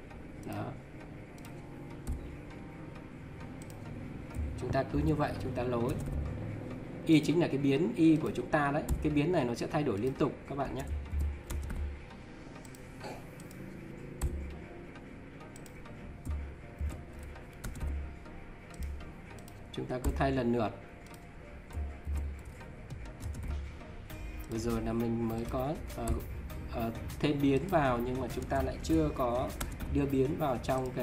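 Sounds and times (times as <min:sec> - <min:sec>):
keyboard and mouse clicks: 0:01.3 - 0:02.6, 0:03.6 - 0:06.5, 0:08.0 - 0:11.9, 0:12.6 - 0:14.6, 0:15.5 - 0:18.0, 0:18.7 - 0:20.4, 0:21.0 - 0:23.7, 0:24.4 - 0:26.9, 0:27.6 - 0:31.0.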